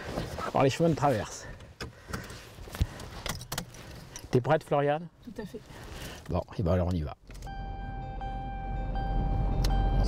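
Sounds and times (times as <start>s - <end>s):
seatbelt clicks and rattles: 1.8s - 4.3s.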